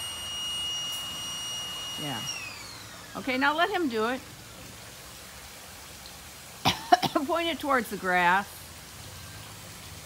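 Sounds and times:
water spraying from hose: 0:00.0 - 0:10.0
person coughing: 0:06.6 - 0:07.2.

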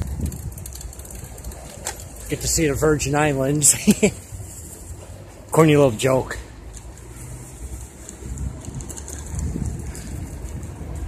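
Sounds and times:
wind on microphone: 0:00.0 - 0:01.6, 0:08.2 - 0:11.0
bicycle rolling on paved path: 0:00.0 - 0:11.0.

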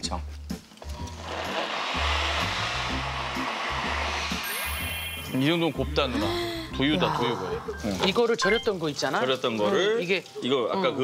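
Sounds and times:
blender grinding food: 0:00.9 - 0:05.2.

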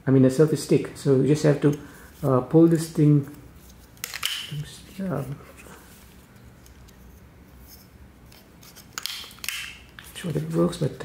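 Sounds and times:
handling noise of selfie stick: 0:01.6 - 0:10.6.

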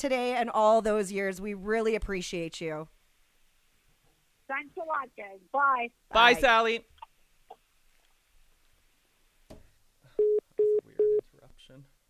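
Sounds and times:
short phone beeps: 0:10.2 - 0:11.2.

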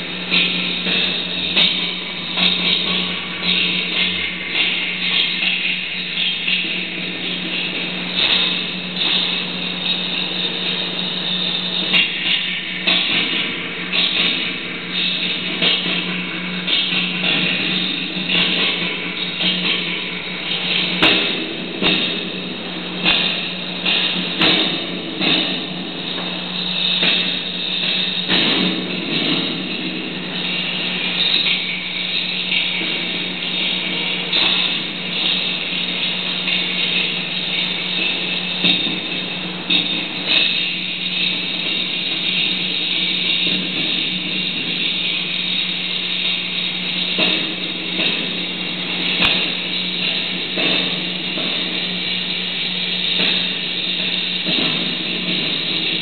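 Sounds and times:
distorted noise music: 0:00.0 - 0:56.0.

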